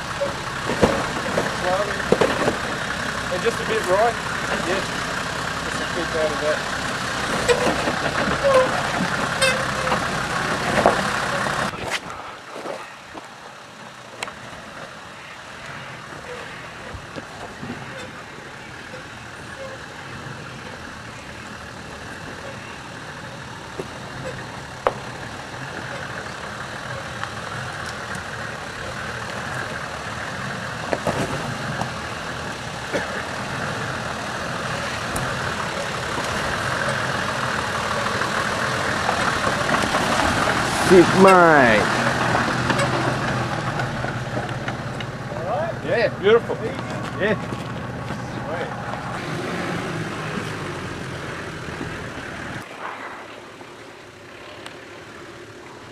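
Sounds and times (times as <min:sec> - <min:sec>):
off-road engines at low speed: 0:00.0 - 0:55.9.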